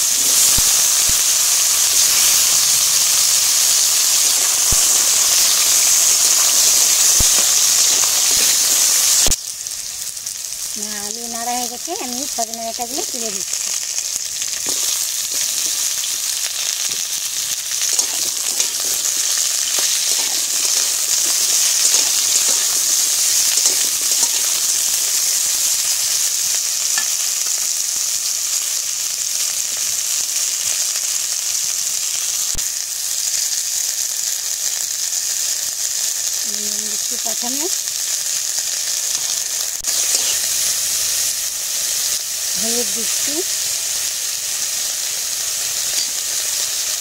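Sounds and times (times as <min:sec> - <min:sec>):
food sizzling in hot oil: 0:00.0 - 0:47.0.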